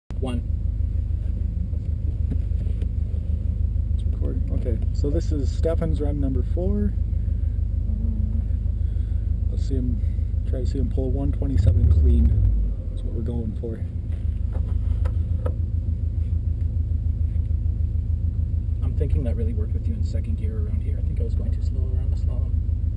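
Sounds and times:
car engine idling: 0:00.1 - 0:22.9.

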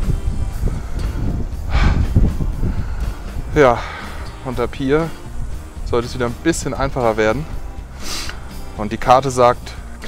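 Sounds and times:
wind buffeting microphone: 0:00.0 - 0:09.0
short breathy hiss: 0:07.9 - 0:08.7.

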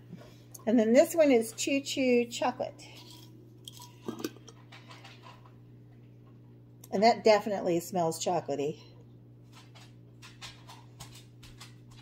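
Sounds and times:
steady low hum: 0:00.0 - 0:12.0
jar handling: 0:03.0 - 0:04.7.

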